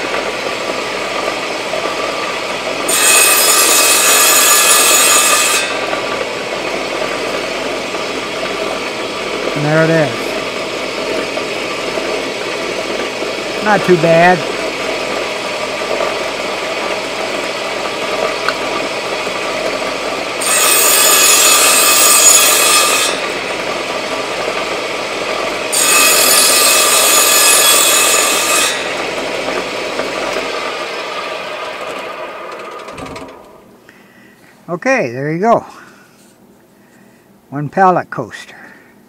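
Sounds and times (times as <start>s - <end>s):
saw cutting through wood: 0.0s - 32.6s
saw winding down: 0.0s - 33.7s
table saw running: 0.0s - 33.8s.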